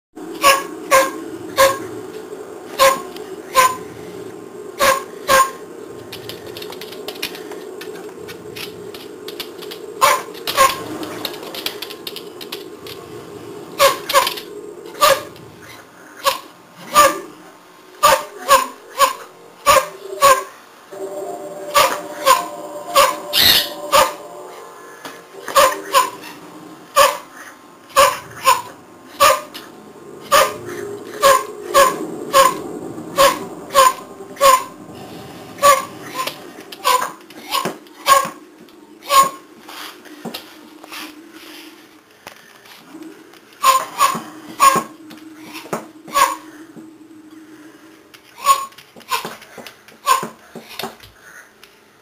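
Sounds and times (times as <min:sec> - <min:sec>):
steady low hum: 0:00.2 - 0:48.4
dog barking: 0:00.4 - 0:01.9, 0:02.8 - 0:03.8, 0:04.8 - 0:05.6, 0:10.0 - 0:10.8, 0:13.8 - 0:14.4, 0:15.0 - 0:15.3, 0:16.2 - 0:17.3, 0:18.0 - 0:20.5, 0:25.5 - 0:26.4, 0:27.0 - 0:27.3, 0:28.0 - 0:29.5, 0:30.3 - 0:30.6, 0:31.2 - 0:32.6, 0:33.2 - 0:34.8, 0:35.6 - 0:38.4, 0:39.0 - 0:39.4, 0:43.6 - 0:44.9, 0:46.1 - 0:46.4.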